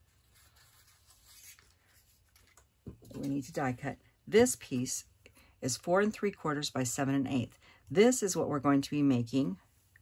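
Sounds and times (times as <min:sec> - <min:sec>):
paper rustling: 0:00.0 - 0:03.7.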